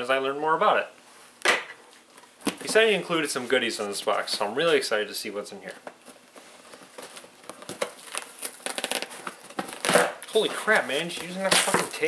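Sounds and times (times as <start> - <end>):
cardboard rustling: 5.8 - 12.0
duct tape peeling and tearing: 7.0 - 10.4.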